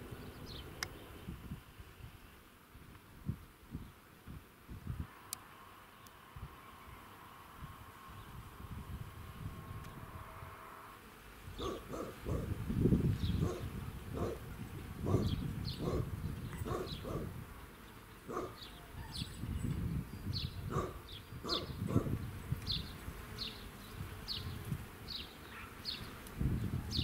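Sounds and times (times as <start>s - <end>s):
birds chirping: 0.0s - 1.4s, 9.3s - 27.0s.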